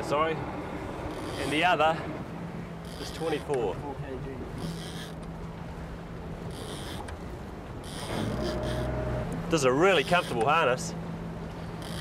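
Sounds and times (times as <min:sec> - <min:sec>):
boat engine running: 0:00.0 - 0:12.0
sea noise: 0:00.0 - 0:12.0
wind: 0:00.0 - 0:12.0.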